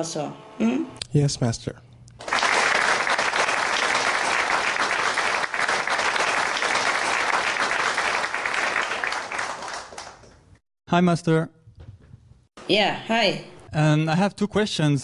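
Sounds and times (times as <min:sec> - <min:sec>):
crowd clapping: 0:02.2 - 0:10.6.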